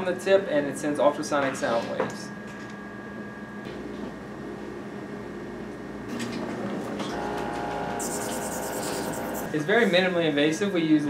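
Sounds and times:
multi-tone electronic hum: 0:02.2 - 0:11.0.

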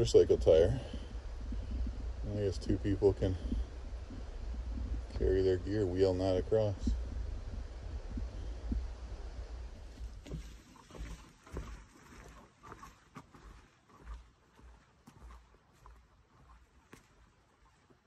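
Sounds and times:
low rumbling handling noise: 0:00.0 - 0:11.8.

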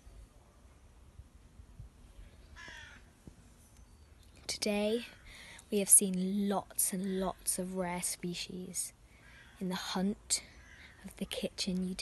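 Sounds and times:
crow cawing: 0:02.6 - 0:03.1, 0:09.2 - 0:09.6, 0:10.6 - 0:11.0.

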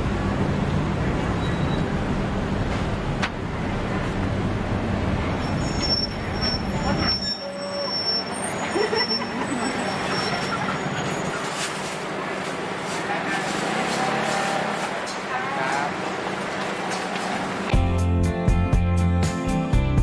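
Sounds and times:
traffic engine rumble: 0:00.0 - 0:18.1.

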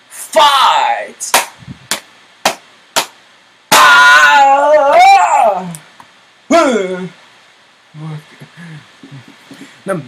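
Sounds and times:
sharp smacks: 0:01.3 - 0:03.9.

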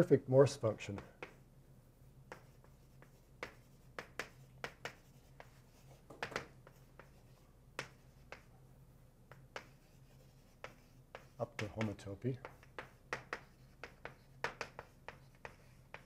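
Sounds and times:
chalk tapping and scraping: 0:00.5 - 0:16.0.

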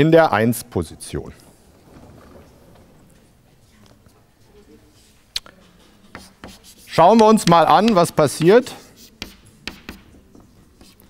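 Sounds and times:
chalk strokes on blackboard: 0:05.0 - 0:11.0
chalk tapping on blackboard: 0:05.4 - 0:11.0.

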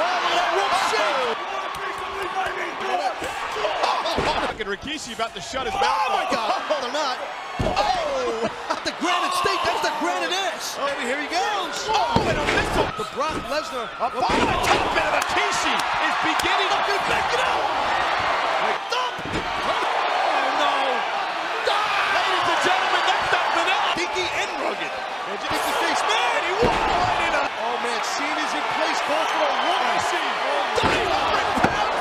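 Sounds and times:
crowd shouting and yelling: 0:00.0 - 0:32.0.

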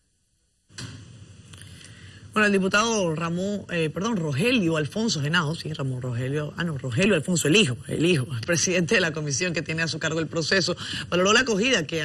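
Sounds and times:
room ambience hiss and murmur: 0:00.0 - 0:12.0.

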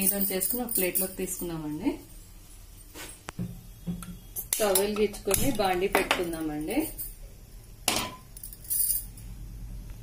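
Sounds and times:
woman's voice: 0:00.0 - 0:02.1, 0:04.6 - 0:07.0.

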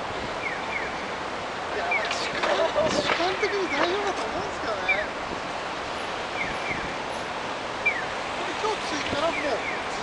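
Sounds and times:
cars driving past: 0:00.0 - 0:10.0.

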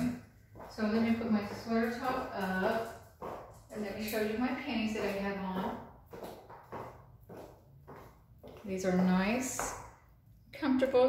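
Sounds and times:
high heels on tile floor: 0:00.0 - 0:10.1.

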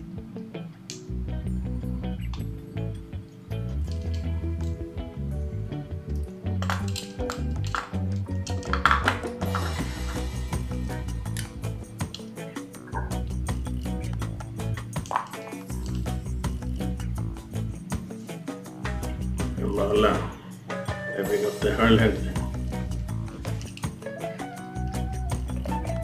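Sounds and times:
background music with bass and beat: 0:01.0 - 0:26.0.

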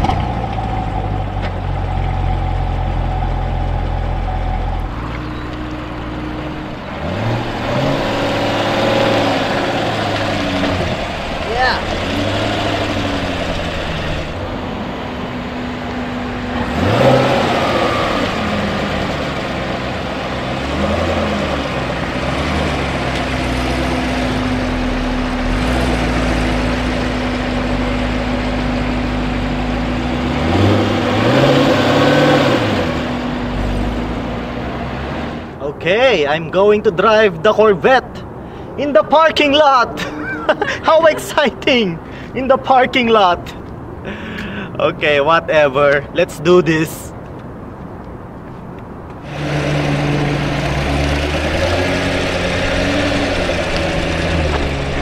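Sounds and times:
car engine idling and revving: 0:00.0 - 0:36.0, 0:47.1 - 0:55.0.

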